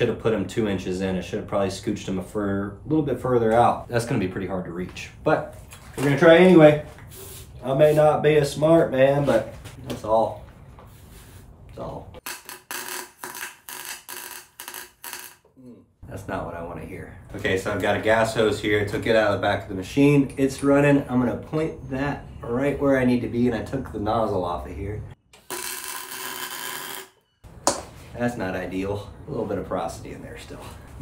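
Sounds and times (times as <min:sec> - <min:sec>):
welding arc bursts: 0:12.2 - 0:15.4, 0:25.4 - 0:27.2.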